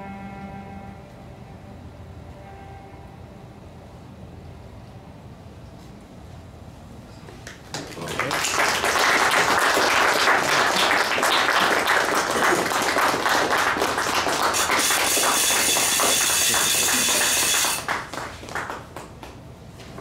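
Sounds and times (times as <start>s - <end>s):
audience applauding: 7.4s - 19.4s.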